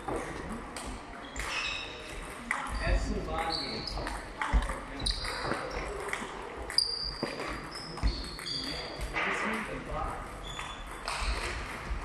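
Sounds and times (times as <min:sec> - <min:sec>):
shoe soles squeaking: 0:01.2 - 0:06.0, 0:06.7 - 0:09.2, 0:10.4 - 0:11.7
ping-pong ball clicking: 0:03.4 - 0:09.1.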